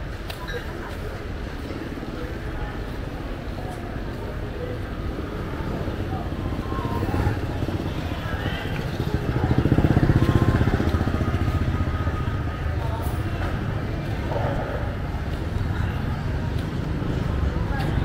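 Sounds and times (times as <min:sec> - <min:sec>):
faint voices: 0:00.0 - 0:18.0
street traffic: 0:00.0 - 0:18.0
motorbike engine passing: 0:05.1 - 0:17.7.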